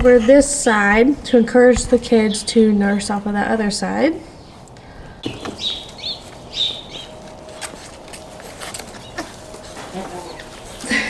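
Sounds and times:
birds chirping: 0:01.2 - 0:11.0
faint clicks and rustles: 0:04.4 - 0:11.0.

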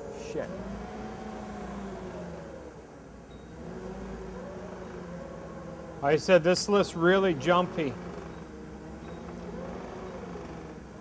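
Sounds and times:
forklift engine idling: 0:00.0 - 0:11.0.

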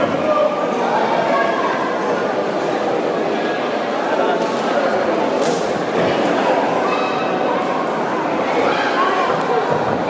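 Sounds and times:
spectators talking and calling out: 0:00.0 - 0:10.0.

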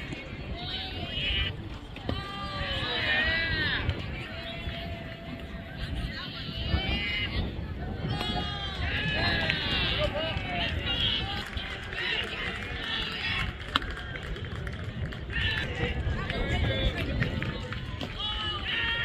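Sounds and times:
people calling out and chattering: 0:00.0 - 0:19.0
wind rumble on microphone: 0:00.0 - 0:19.0.

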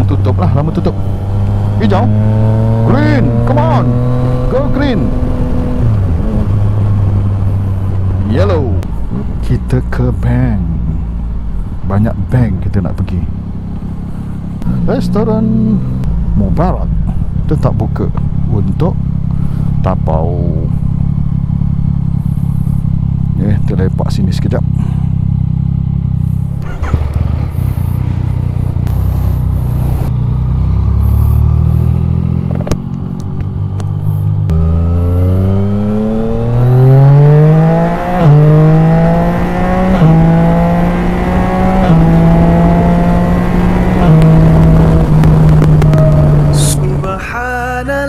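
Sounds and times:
motorcycle engine accelerating: 0:00.0 - 0:47.9.

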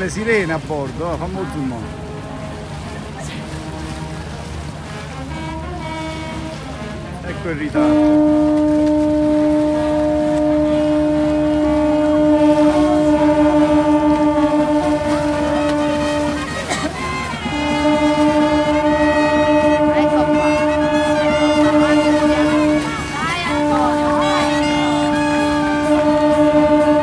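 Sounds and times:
people's voices: 0:00.0 - 0:05.0, 0:06.3 - 0:27.0
ship horns blasting: 0:00.0 - 0:27.0.

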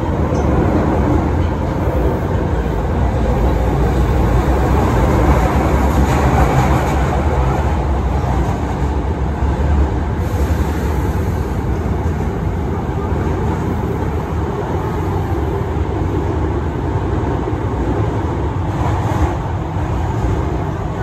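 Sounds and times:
train wheels rumbling on rails: 0:00.0 - 0:21.0
hiss: 0:10.2 - 0:11.6.

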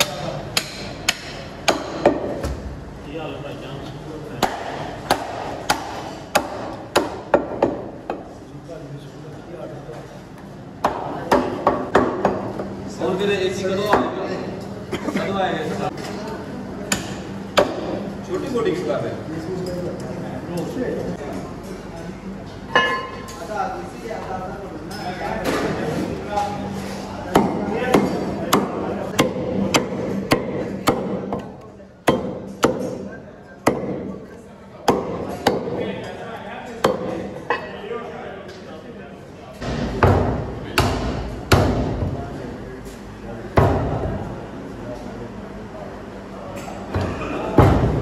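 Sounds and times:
cleaver chopping on wooden block: 0:32.1 - 0:32.9.

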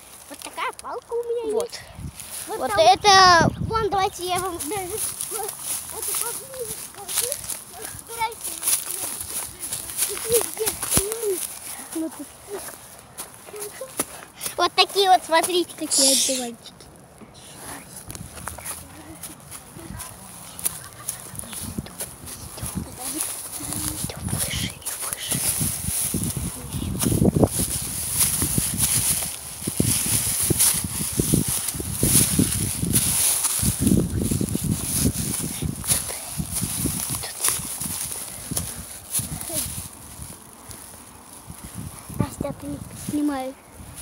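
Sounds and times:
footsteps through dry grass: 0:00.0 - 0:44.0.

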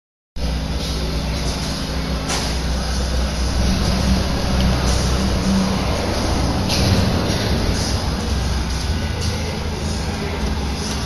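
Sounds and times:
engine running through exhaust pipes: 0:00.4 - 0:11.0.

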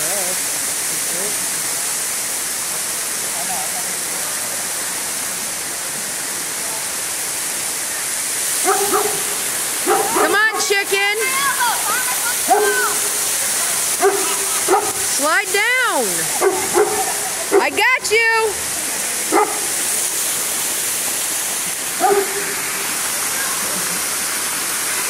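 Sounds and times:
waterfall rushing: 0:00.0 - 0:25.0.

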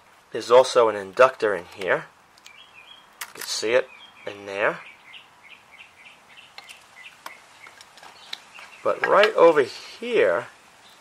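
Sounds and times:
small bird chirping: 0:02.4 - 0:10.0.

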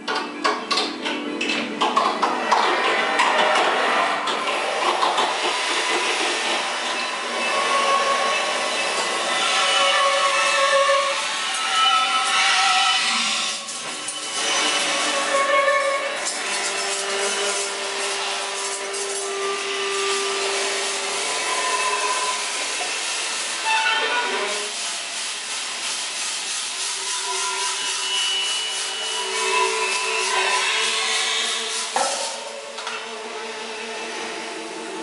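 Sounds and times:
rubbing and scraping textures: 0:09.4 - 0:32.8.

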